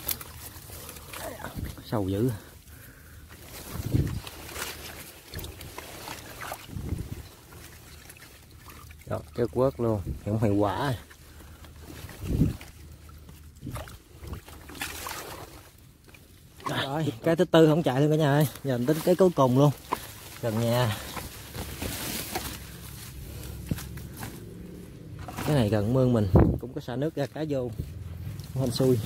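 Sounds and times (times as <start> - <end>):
leaves and grass rustling: 0.0 - 29.0
water sloshing and swishing: 0.0 - 29.0
man speaking: 20.4 - 21.2, 28.5 - 29.0.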